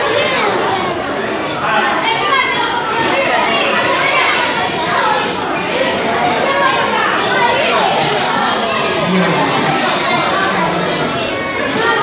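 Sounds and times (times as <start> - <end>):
many children talking: 0.0 - 12.0.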